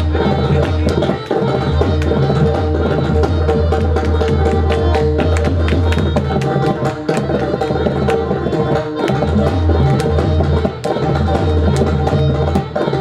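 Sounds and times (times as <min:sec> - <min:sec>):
harmonium melody: 0:00.0 - 0:13.0.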